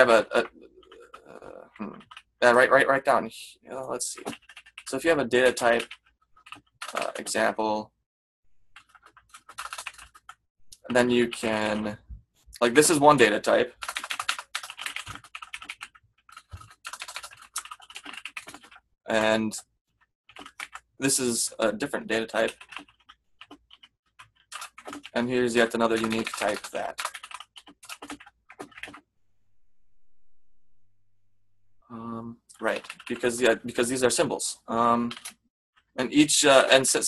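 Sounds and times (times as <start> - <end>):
fast keyboard typing: 0.0 - 2.7, 4.1 - 7.5, 8.8 - 11.9, 13.1 - 18.9, 20.3 - 21.0, 21.6 - 29.1, 32.5 - 33.8, 35.0 - 35.9.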